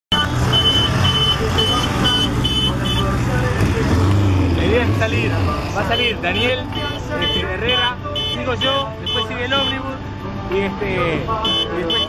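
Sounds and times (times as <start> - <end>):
vehicle horn tooting: 0.1 - 3.3, 5.8 - 9.9, 11.3 - 12.0
engines idling: 0.1 - 12.0.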